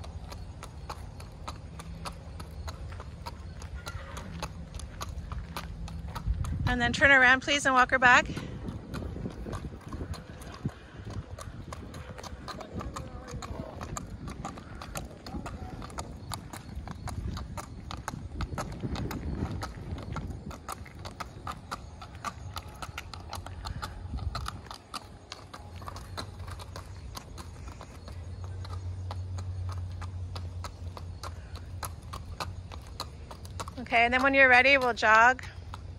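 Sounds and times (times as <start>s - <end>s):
hooves clip-clopping on pavement: 0.0s - 35.9s.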